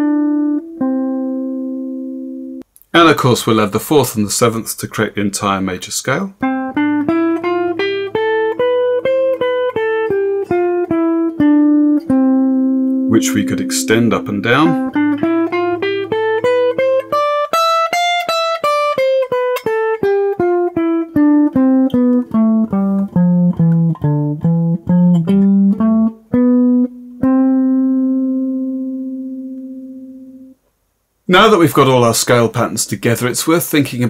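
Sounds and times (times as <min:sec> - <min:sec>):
electric guitar playing a scale: 0:00.0 - 0:02.6, 0:06.4 - 0:30.6.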